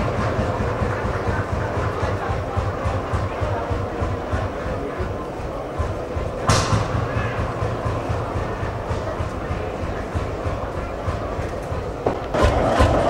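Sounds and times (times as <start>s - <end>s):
tractor engine idling: 0.0s - 13.0s
sharp crack: 6.4s - 9.4s.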